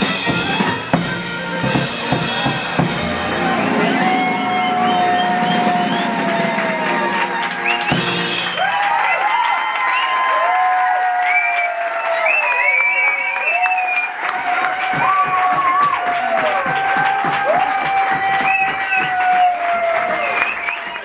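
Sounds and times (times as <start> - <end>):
swing band with clarinet: 0.0 - 8.5
audience cheering and whistling: 0.0 - 21.0
applause: 2.4 - 21.0.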